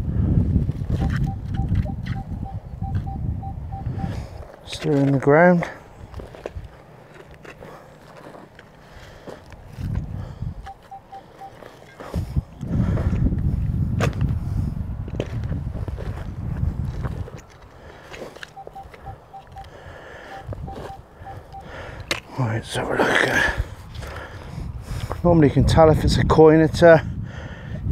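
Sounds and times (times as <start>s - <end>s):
metal detector beeping: 0.9s - 5.2s, 10.6s - 12.3s, 18.3s - 22.0s.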